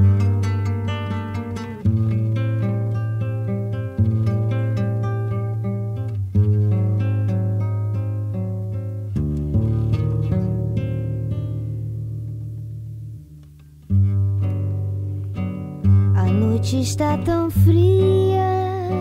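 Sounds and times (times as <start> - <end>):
acoustic guitar picking: 0.0 - 19.0.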